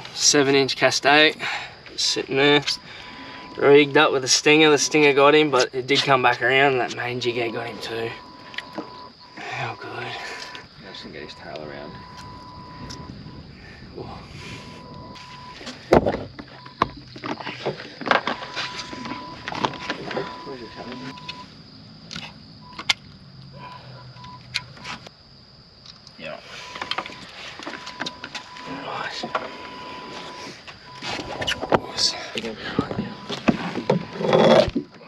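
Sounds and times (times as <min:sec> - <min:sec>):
thin steady tone: 0:00.2 - 0:15.9.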